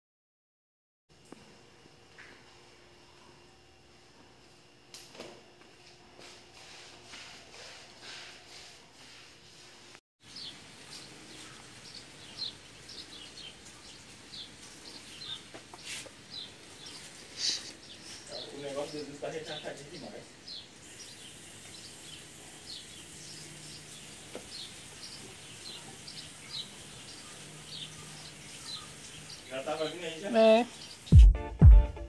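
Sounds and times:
small birds chirping: 0:10.2 - 0:31.2.

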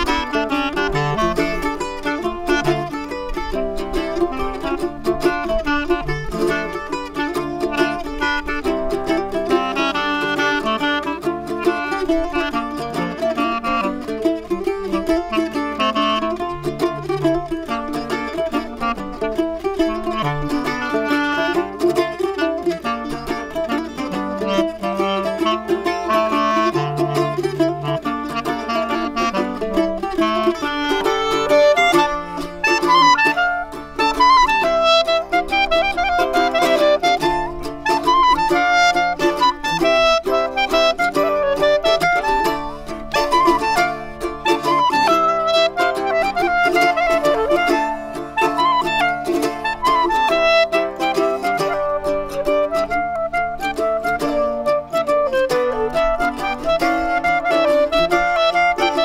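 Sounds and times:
clarinet melody: 0:00.0 - 0:59.0
mandola plucked: 0:00.0 - 0:59.0.

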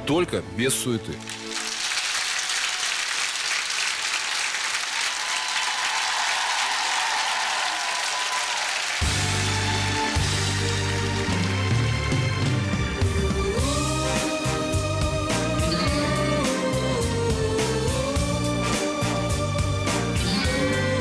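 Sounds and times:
audience applauding: 0:01.2 - 0:12.7.

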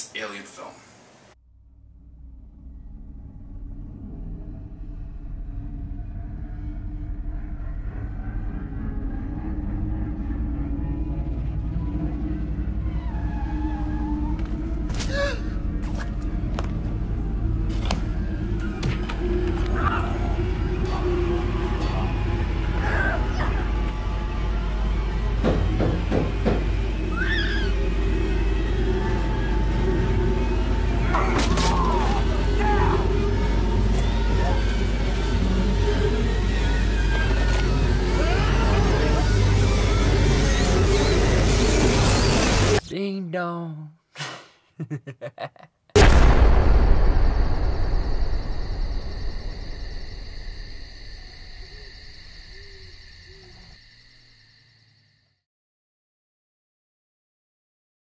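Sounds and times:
low rumble: 0:01.4 - 0:25.5, 0:46.0 - 0:53.1
horror film music: 0:01.5 - 0:42.8, 0:46.0 - 0:55.3.

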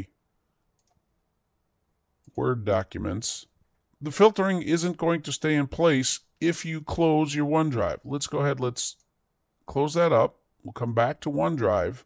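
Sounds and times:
computer mouse clicks: 0:00.7 - 0:01.1.

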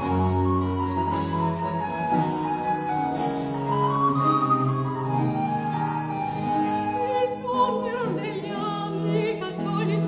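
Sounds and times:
recorder melody: 0:00.0 - 0:08.2
viola da gamba: 0:00.0 - 0:10.0.

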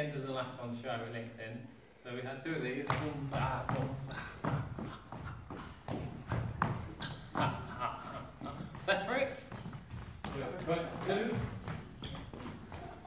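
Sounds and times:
dance footsteps on wooden floor: 0:02.8 - 0:13.0.

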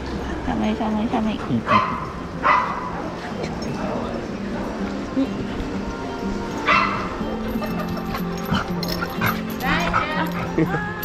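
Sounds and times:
background music: 0:00.0 - 0:11.0
dogs play-wrestling: 0:07.6 - 0:10.8.

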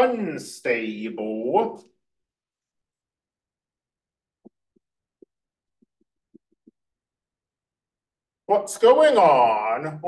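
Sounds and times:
stylus tapping on tablet screen: 0:04.4 - 0:07.0.

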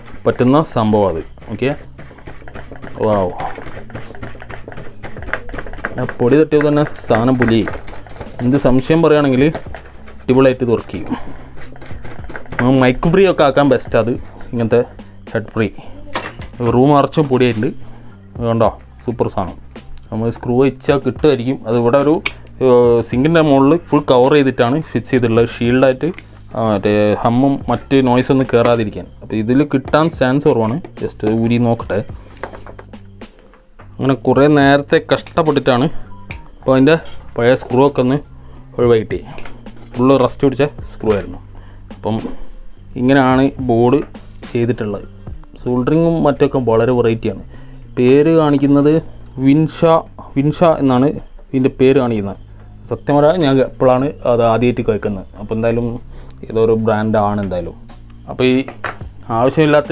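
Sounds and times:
brush scrubbing circuit board: 0:00.0 - 0:15.5
faint background music: 0:00.0 - 0:59.9
man talking: 0:00.2 - 0:01.9, 0:02.8 - 0:03.7, 0:05.9 - 0:07.8, 0:08.4 - 0:11.3, 0:12.5 - 0:17.8, 0:18.4 - 0:32.2, 0:34.0 - 0:36.0, 0:36.6 - 0:38.2, 0:38.8 - 0:41.4, 0:42.0 - 0:42.4, 0:43.0 - 0:59.9.

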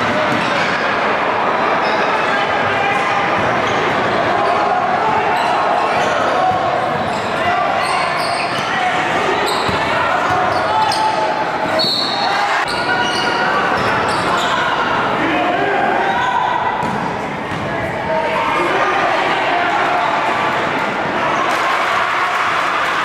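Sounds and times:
spectators' voices din: 0:00.0 - 0:23.0.

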